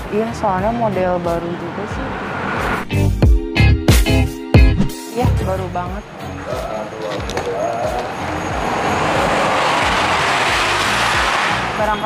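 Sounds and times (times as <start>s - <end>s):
road vehicle rushing past: 0.0s - 3.0s, 5.9s - 12.0s.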